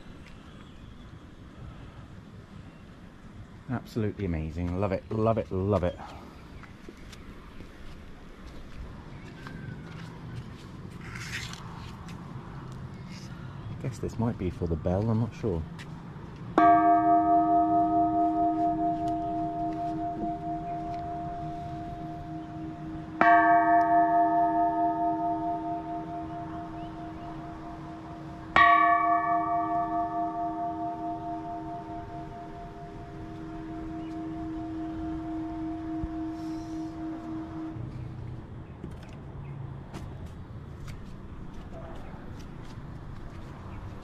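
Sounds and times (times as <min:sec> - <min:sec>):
large temple bell ringing: 0:16.6 - 0:37.9.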